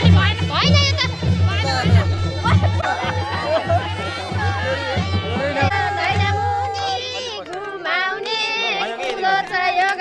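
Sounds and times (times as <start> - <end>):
women singing together: 0.0 - 10.0
hands clapping: 7.0 - 10.0.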